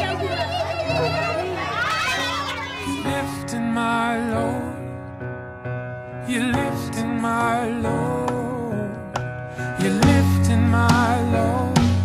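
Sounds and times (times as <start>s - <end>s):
children chattering and calling out: 0.0s - 3.3s
background music: 0.0s - 12.0s.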